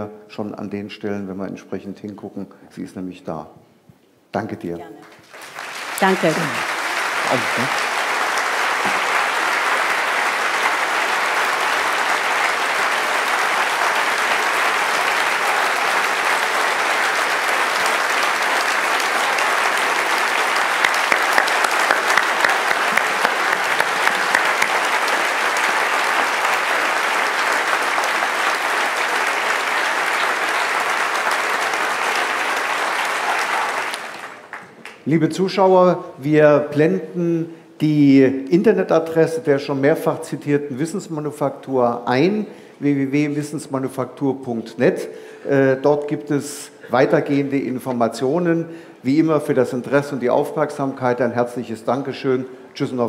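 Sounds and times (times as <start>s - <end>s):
large audience applauding: 5.0s - 35.1s
sharp claps: 5.0s - 35.1s.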